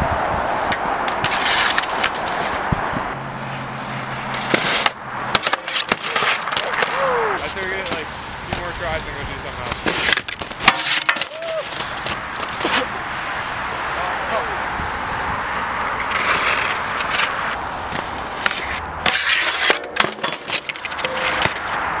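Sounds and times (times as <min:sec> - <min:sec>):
skis scraping on steel handrail: 0:00.4 - 0:02.7, 0:03.6 - 0:08.0, 0:09.6 - 0:13.0, 0:15.2 - 0:21.8
people's voices: 0:05.9 - 0:09.9, 0:11.3 - 0:14.9.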